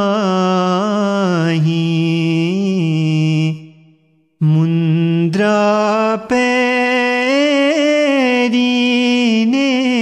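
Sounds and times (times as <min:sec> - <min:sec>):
man singing a hymn: 0:00.0 - 0:03.6, 0:04.4 - 0:10.0.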